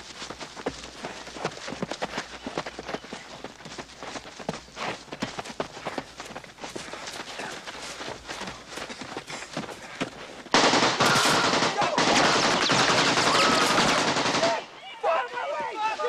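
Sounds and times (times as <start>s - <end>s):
rifle full-automatic burst: 10.5s - 14.6s
men shouting: 11.0s - 16.0s.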